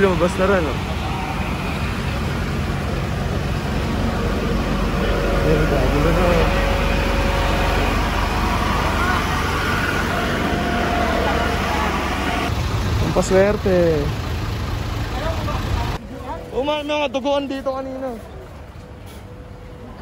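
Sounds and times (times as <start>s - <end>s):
crowd voices: 0.0s - 12.5s
fire truck engines droning: 0.0s - 20.0s.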